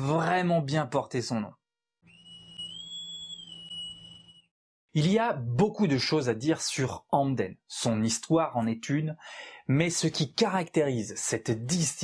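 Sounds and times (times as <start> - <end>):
whistle-like synthetic tone: 2.0 - 4.6.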